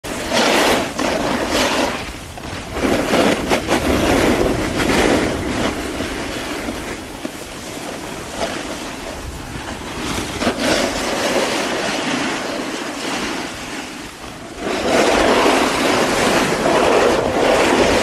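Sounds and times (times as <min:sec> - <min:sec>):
skis scraping on snow: 0:00.0 - 0:18.0
wind rushing over microphone: 0:00.0 - 0:18.0.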